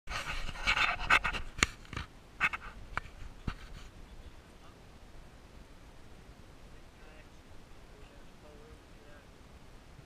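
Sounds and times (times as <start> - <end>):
rubbing and rustling on microphone: 0.1 - 4.8.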